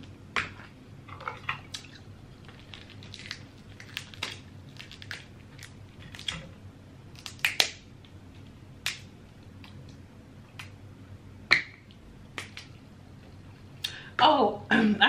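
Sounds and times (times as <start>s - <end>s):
crab shells cracking: 1.7s - 6.5s, 7.1s - 8.2s, 8.8s - 10.0s.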